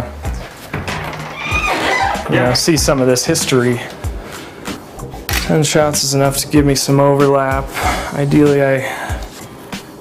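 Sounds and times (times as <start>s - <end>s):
soft background music: 0.0s - 10.0s
wooden door creaking open: 0.5s - 3.6s.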